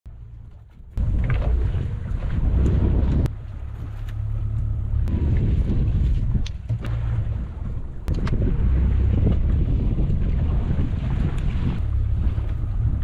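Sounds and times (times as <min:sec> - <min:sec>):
wind buffeting microphone: 0:00.2 - 0:13.0.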